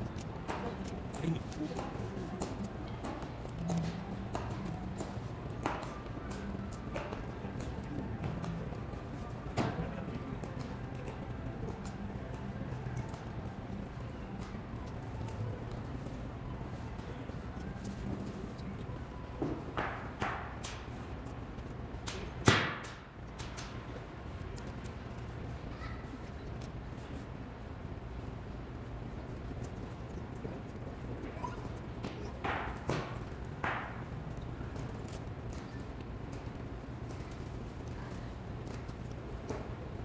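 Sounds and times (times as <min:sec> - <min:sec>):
low steady background noise: 0:00.0 - 0:40.0.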